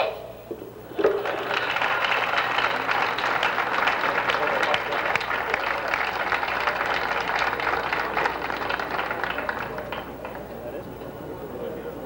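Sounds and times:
crowd applauding: 0.9 - 11.6.

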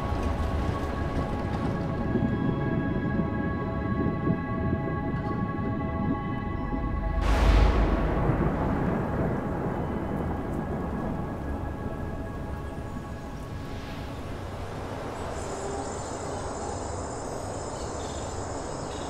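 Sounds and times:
thunder rumbling: 0.0 - 18.0
rain hissing: 7.2 - 18.9
crickets chirping: 7.8 - 19.0.

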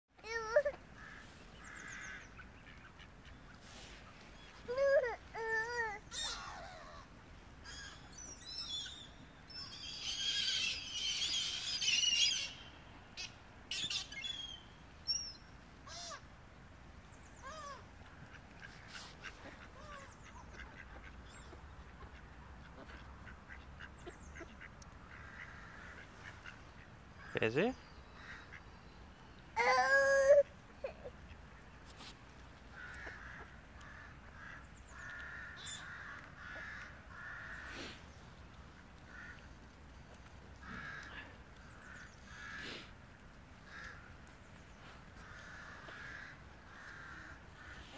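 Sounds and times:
gulls calling: 29.6 - 31.1.

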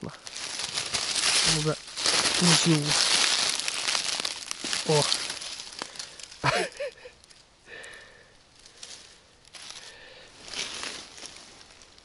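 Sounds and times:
dry leaves rustling and crackling: 0.0 - 12.0.

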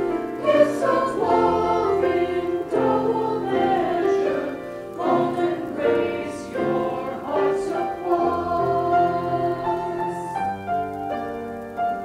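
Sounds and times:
mixed choir singing: 0.0 - 10.7.

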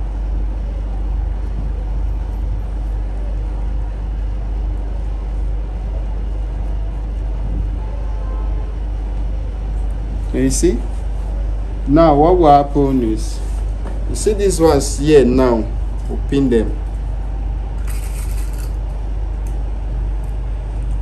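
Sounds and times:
steady low rumble: 0.0 - 21.0.

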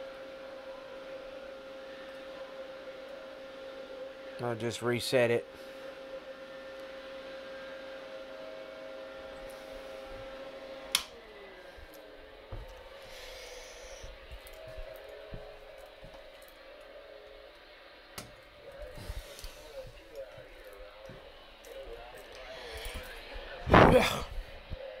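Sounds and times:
electronics humming with whine: 0.0 - 25.0
sharp switch click: 10.9 - 11.1.

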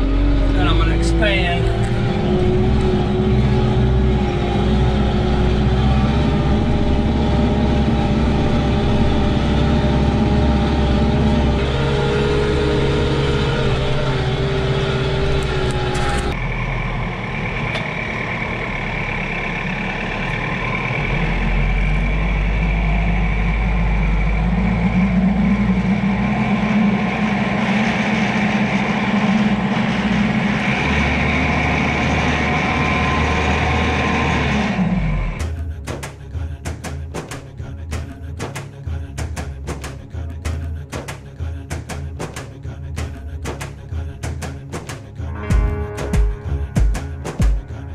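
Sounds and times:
tractor diesel engine under load: 0.0 - 47.9
tractor engine whine: 0.0 - 47.9
music: 35.4 - 47.9.

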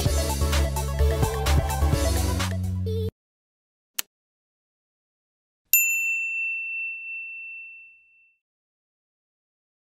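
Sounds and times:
bell-like ding chime: 5.8 - 8.4.

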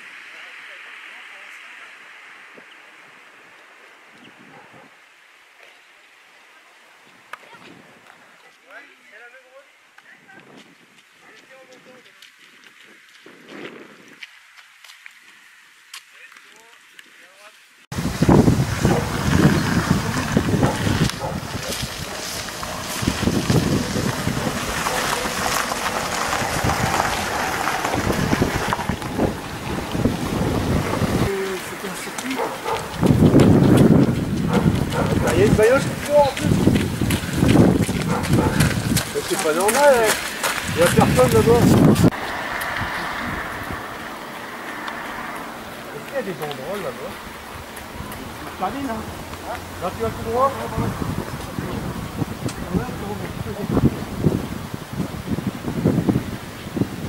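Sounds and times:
wind buffeting microphone: 2.6 - 5.0, 7.0 - 8.4, 10.1 - 14.3, 17.9 - 57.0
distant voices: 18.0 - 53.7.

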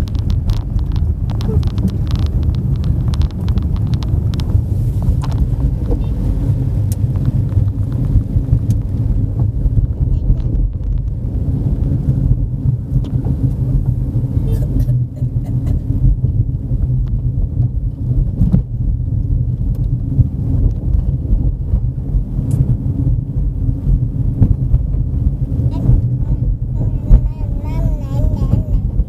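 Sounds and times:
car rumbling on rough road: 0.0 - 29.0.

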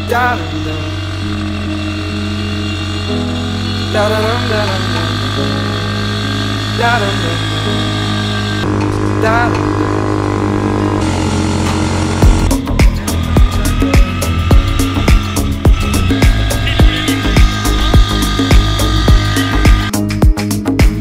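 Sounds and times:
held music chords: 0.0 - 21.0
steady drum beat: 12.2 - 21.0.

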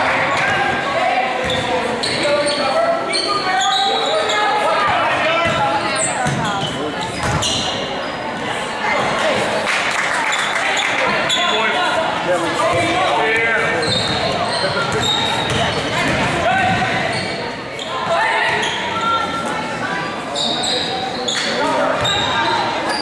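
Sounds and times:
spectators talking and calling out: 0.0 - 23.0
sneaker squeaks on hardwood: 1.4 - 4.5, 5.4 - 7.9, 13.4 - 19.2, 20.4 - 23.0
basketball dribbling: 6.2 - 7.5, 13.8 - 17.2.

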